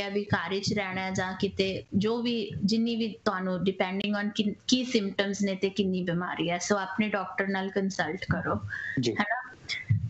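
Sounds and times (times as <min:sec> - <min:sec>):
woman talking over video call: 0:00.0 - 0:10.0.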